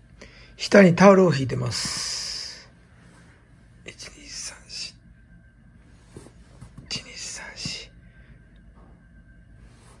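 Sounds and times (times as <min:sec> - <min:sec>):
person whispering counting: 0:03.8 - 0:05.0, 0:06.8 - 0:08.0.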